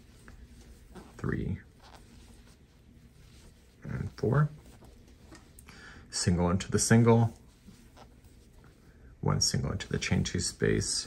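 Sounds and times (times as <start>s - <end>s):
yarn handled on crochet hook: 0.0s - 5.6s.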